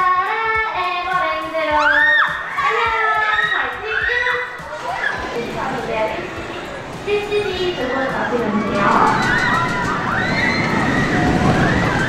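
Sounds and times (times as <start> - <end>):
riders screaming and shouting: 1.8 - 5.3, 8.6 - 12.0.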